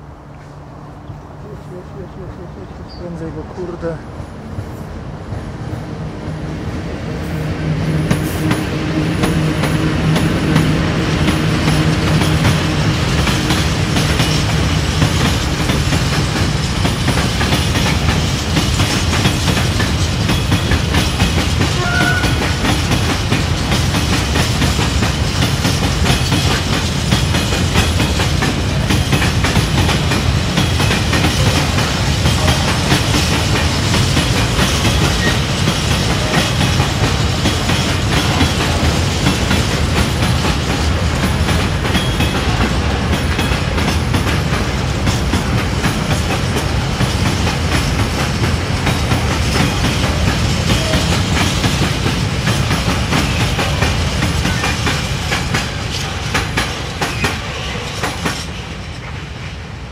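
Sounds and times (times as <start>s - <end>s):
freight train wheels rumbling: 0.0s - 59.9s
train wheels clickety-clack: 7.2s - 59.9s.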